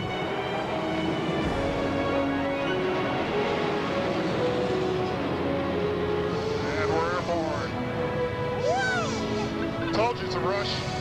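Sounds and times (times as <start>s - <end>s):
jet engine at full power: 0.0s - 8.4s
background music with held notes: 0.0s - 11.0s.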